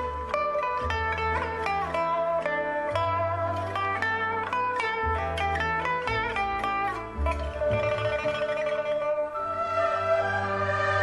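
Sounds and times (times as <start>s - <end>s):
plucked lute melody: 0.0s - 11.0s.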